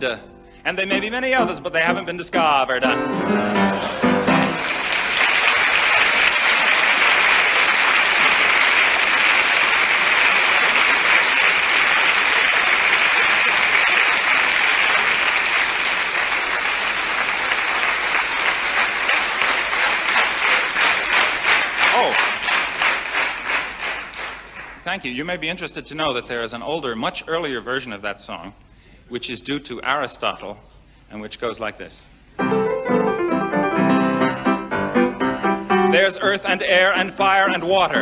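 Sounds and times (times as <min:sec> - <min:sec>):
audience applause: 0:03.4 - 0:24.8, 0:36.9 - 0:38.0
rhythmic clapping in unison: 0:03.5 - 0:25.0, 0:35.9 - 0:38.0.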